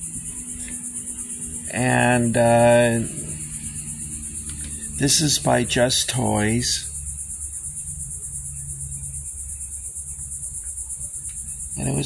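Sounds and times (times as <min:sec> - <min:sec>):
insects trilling: 0:00.0 - 0:12.0
low hum: 0:00.0 - 0:12.0.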